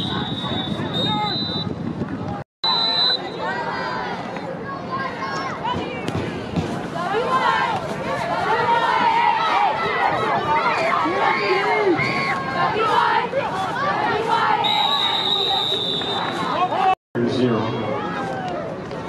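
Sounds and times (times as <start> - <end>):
crowd yelling and cheering: 2.6 - 19.0.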